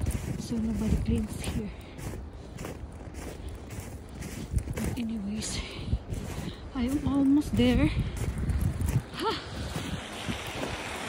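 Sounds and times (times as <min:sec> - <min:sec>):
footsteps crunching in snow: 0:00.0 - 0:11.0.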